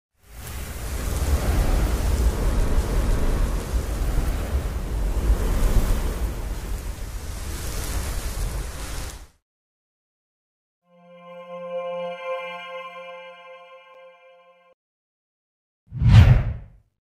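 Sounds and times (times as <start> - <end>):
rush of noise with deep bass: 0.4 - 8.3, 16.0 - 16.7.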